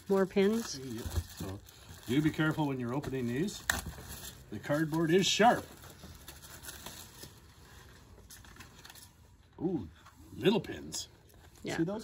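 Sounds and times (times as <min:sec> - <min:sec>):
plastic packets rustling: 0:00.0 - 0:09.5.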